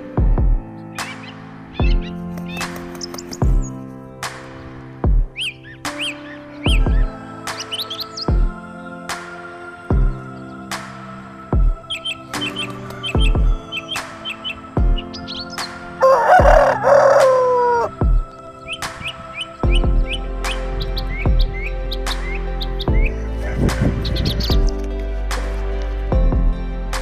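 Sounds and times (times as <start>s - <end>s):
background music: 0.0s - 27.0s
rooster crowing: 16.0s - 18.0s.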